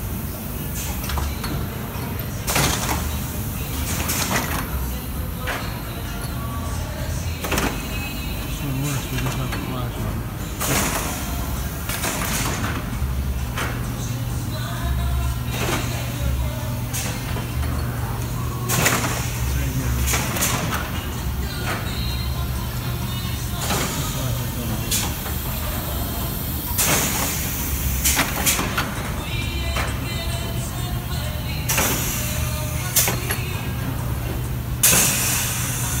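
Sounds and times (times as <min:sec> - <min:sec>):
printing press humming: 0:00.0 - 0:36.0
pneumatic air hiss: 0:24.9 - 0:28.7, 0:31.7 - 0:33.2, 0:34.8 - 0:36.0
compressed air hiss: 0:34.8 - 0:36.0.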